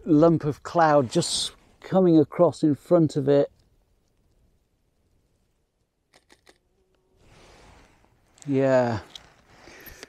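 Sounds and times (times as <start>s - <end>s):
soft rush of noise: 7.1s - 10.0s.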